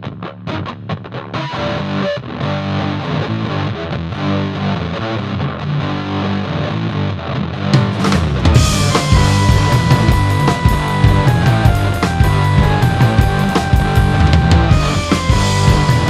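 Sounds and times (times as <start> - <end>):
distorted electric guitar: 0.0 - 16.0
rock band with drums: 0.0 - 16.0.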